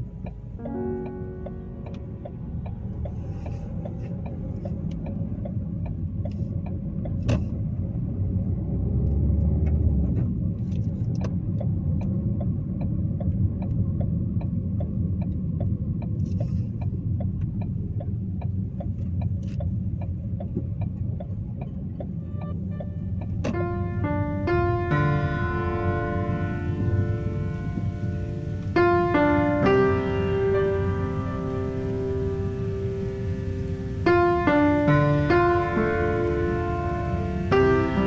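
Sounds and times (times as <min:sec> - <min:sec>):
light regular ticking: 0:00.0 - 0:07.4, 0:10.8 - 0:38.0
car engine and tyre rumble: 0:00.0 - 0:38.0.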